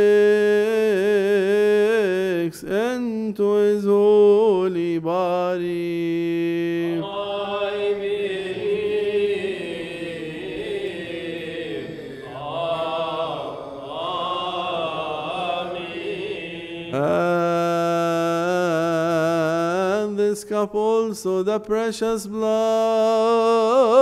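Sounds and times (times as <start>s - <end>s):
voices chanting: 6.9s - 17.9s.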